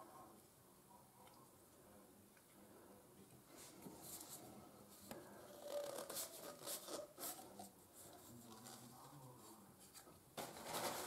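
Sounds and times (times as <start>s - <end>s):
plastic pipe fittings rubbing: 5.1s - 9.0s.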